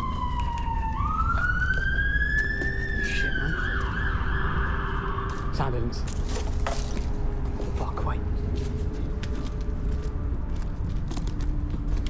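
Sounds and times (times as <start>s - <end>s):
emergency siren wailing: 0.0s - 6.1s.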